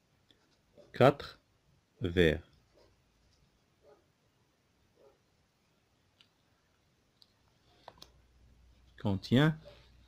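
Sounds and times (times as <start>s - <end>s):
faint clicks: 6.1s - 6.4s, 7.2s - 8.2s.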